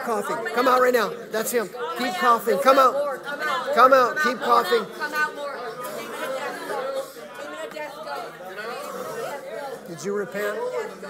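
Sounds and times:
people speaking and praying aloud: 0.0 - 11.0.

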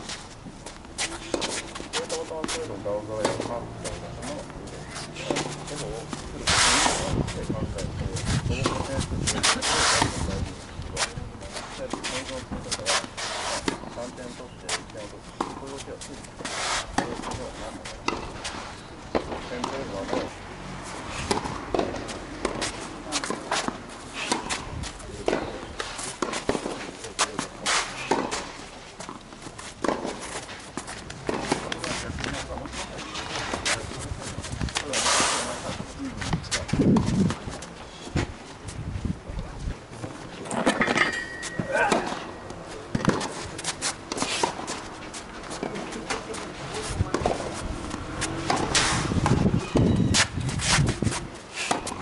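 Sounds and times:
footsteps on court: 0.0 - 6.3, 21.3 - 38.6
tennis ball struck by racket: 0.9 - 3.6, 8.3 - 10.2, 16.4 - 17.4, 18.0 - 20.3, 21.2 - 29.2, 29.8 - 32.5, 40.5 - 46.4, 47.1 - 52.0
voices: 1.0 - 29.2, 29.8 - 52.0
tennis ball bouncing: 8.6 - 10.1, 15.4 - 17.4, 18.0 - 18.5, 19.1 - 20.3, 21.2 - 32.5, 40.5 - 46.5, 47.1 - 50.8, 51.7 - 52.0.

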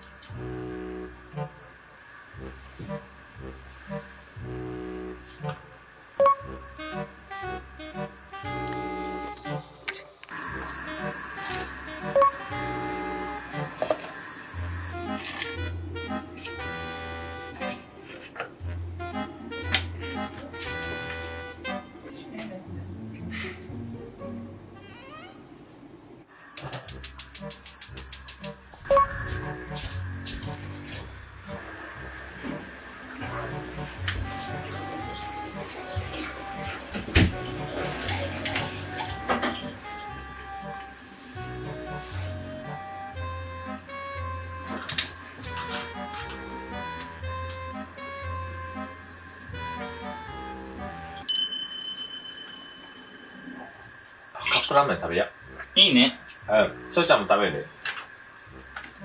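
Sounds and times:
sneaky background music: 6.2 - 13.8, 14.5 - 25.3, 26.9 - 51.8, 52.5 - 57.7
sound effect hit with ringing tone: 51.3 - 53.7
high bell-like ding: 51.3 - 53.8.

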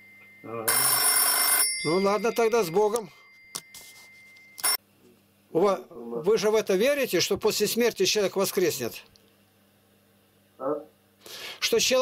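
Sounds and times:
faint high-pitched tone: 0.0 - 0.7.

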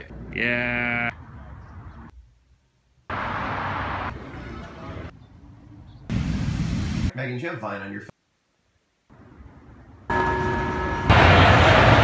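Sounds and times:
faint city street noise: 0.0 - 12.0
wind: 0.0 - 12.0.

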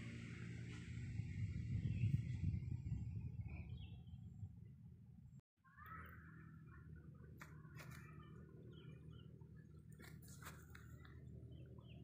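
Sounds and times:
low rumble: 0.0 - 5.4.

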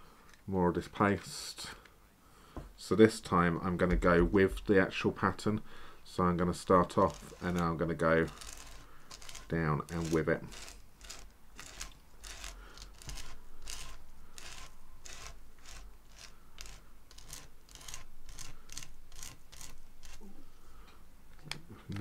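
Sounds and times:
palette knife scraping paste: 8.3 - 20.2.

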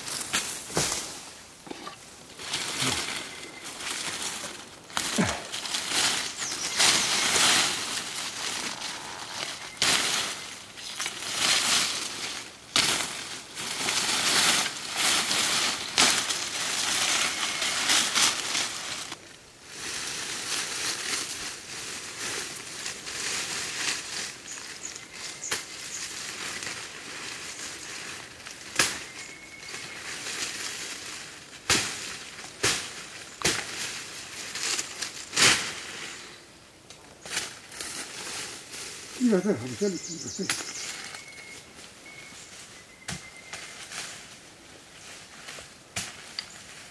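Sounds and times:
rustling leaves: 0.0 - 46.9
machete chopping branches: 31.6 - 34.0.

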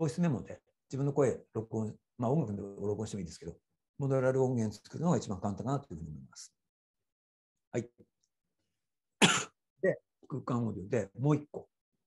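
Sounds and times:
man coughing: 9.2 - 9.6
throat clearing: 9.2 - 9.6.

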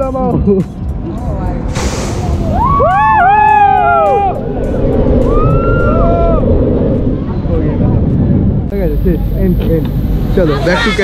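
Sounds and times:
wind buffeting microphone: 0.4 - 11.0.

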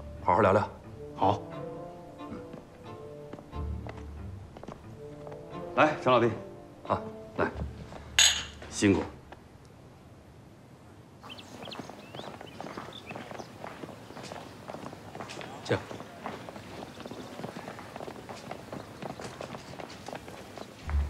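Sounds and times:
footsteps on stone paving: 2.2 - 6.0, 7.4 - 9.5, 11.2 - 21.0
faint voices: 12.8 - 20.6.

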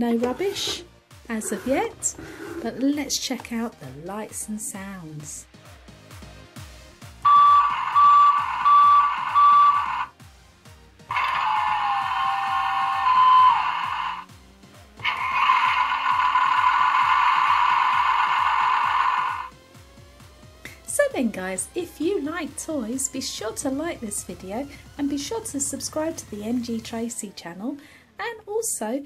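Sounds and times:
quiet background music: 0.0 - 29.0
toy truck repeating beep: 7.2 - 10.1, 12.2 - 14.2
toy engine-like sound: 7.3 - 10.1, 11.1 - 14.2, 15.0 - 19.5.

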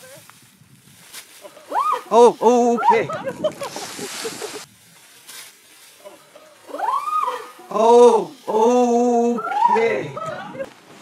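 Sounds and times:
rustling noise: 0.0 - 2.5, 3.1 - 9.5, 10.2 - 11.0.

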